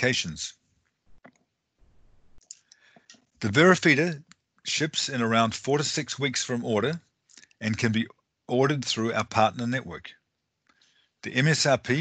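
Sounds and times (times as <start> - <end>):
faint sharp clicks: 2.4 - 3.3.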